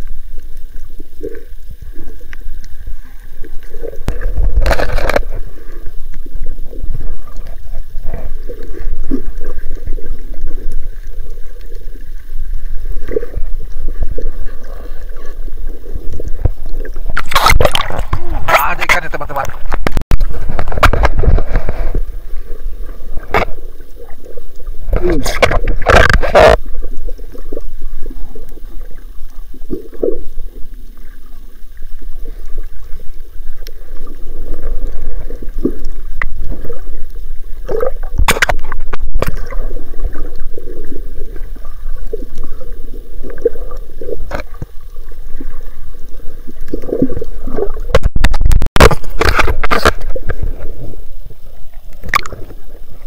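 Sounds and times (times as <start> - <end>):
muffled underwater rushing: 0.0 - 53.0.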